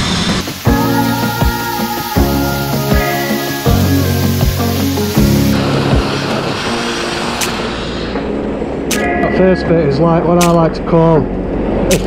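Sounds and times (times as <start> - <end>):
grit blaster hiss: 0.0 - 8.3
background music with beat: 0.4 - 8.2, 8.9 - 9.3.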